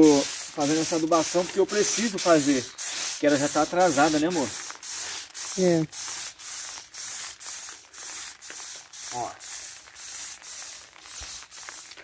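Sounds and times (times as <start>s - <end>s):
pump sprayer hissing in pulses: 0.0s - 12.0s.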